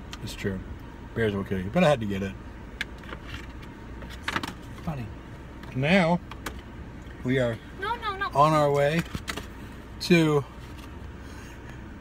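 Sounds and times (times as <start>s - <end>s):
car interior hum: 0.0s - 12.0s.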